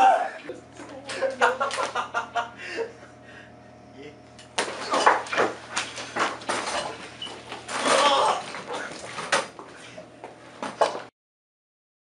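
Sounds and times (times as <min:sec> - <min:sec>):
faint room hum: 0:00.0 - 0:11.1.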